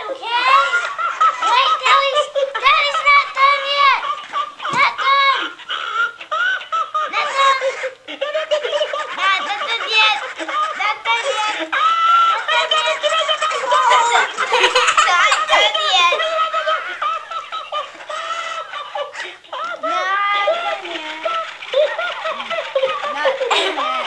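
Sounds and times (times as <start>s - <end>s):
young children giggling: 0.0s - 24.0s
toy's recorded laughter: 0.3s - 24.0s.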